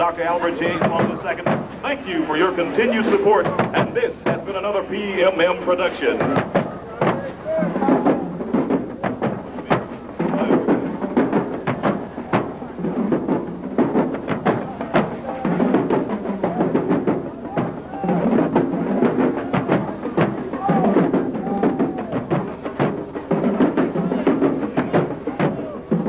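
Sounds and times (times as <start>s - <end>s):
drumline playing a cadence: 0.0s - 26.0s
jumble of voices: 0.0s - 26.0s.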